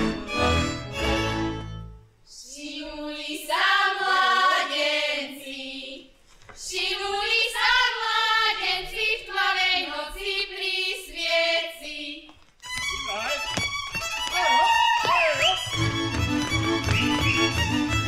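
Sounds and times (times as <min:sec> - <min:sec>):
string band playing dance tune: 0:00.0 - 0:02.0, 0:12.6 - 0:18.0
women singing folk song: 0:02.3 - 0:12.4.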